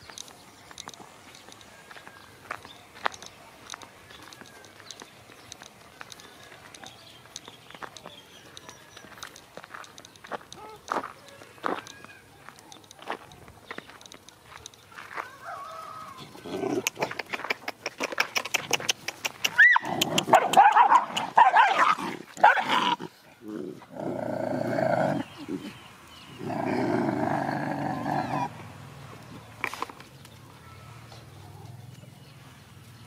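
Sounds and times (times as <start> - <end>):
dogs snarling and yelping: 16.2 - 25.8, 26.4 - 28.6
dog growling: 16.3 - 17.0, 21.7 - 25.8, 26.4 - 28.6.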